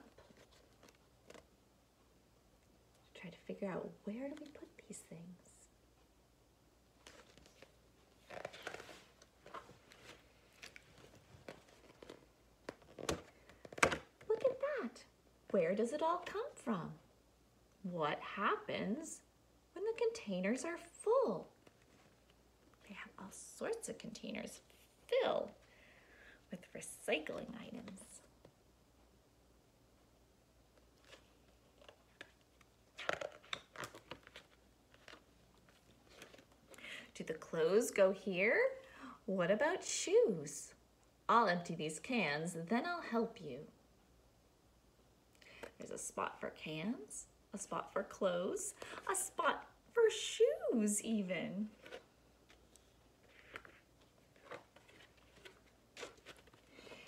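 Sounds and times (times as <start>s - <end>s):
book pages rustling: 0.0s - 1.6s, 7.0s - 14.6s, 30.7s - 36.8s, 51.6s - 57.0s.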